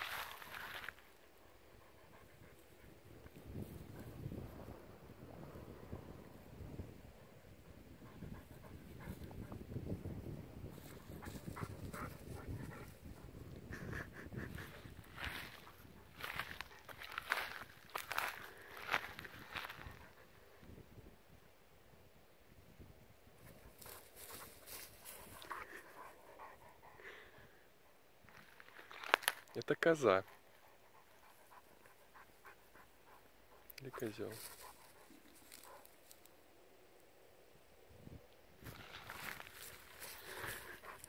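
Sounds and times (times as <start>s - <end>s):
wind on microphone: 2.1s - 21.4s
breathy panting puffs: 11.2s - 17.6s, 24.7s - 28.0s, 30.2s - 35.8s, 39.9s - 41.0s.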